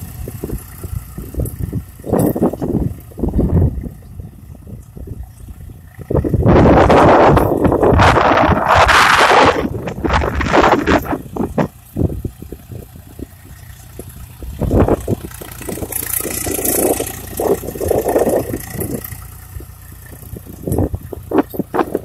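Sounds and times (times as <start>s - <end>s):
tractor diesel engine rumbling: 0.0s - 22.0s.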